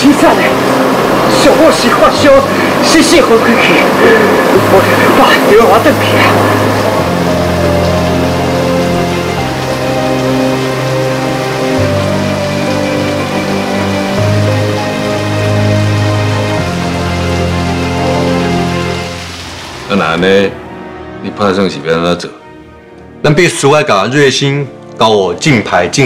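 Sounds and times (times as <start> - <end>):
heavy rain falling: 0.0 - 22.0
low held chords: 0.0 - 23.4.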